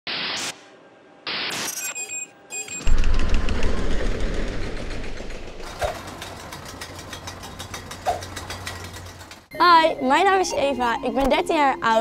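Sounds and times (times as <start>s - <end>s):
deep bass hit: 2.9s - 6.1s
low hum: 2.9s - 8.9s.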